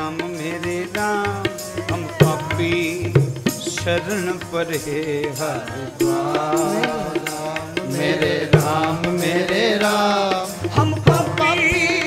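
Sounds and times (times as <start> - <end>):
harmonium: 0.0 - 12.0
men singing devotional song: 0.0 - 12.0
tabla strokes: 0.0 - 12.0.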